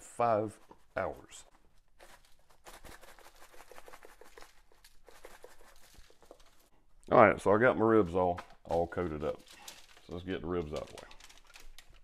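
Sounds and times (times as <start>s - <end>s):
spice shaker pattering on foil: 2.0s - 6.7s.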